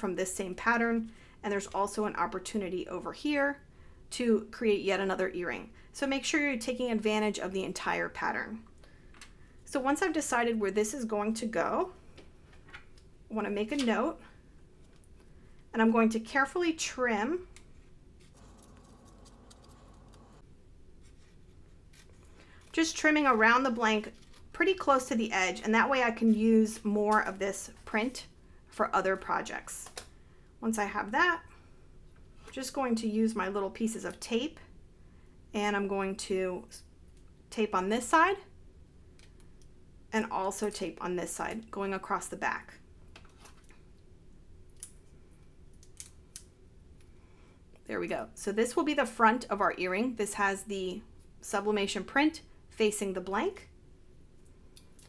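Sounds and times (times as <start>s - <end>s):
paper crackling: 18.2s - 20.4s, 21.0s - 24.6s
scissors snipping paper: 18.4s - 20.3s.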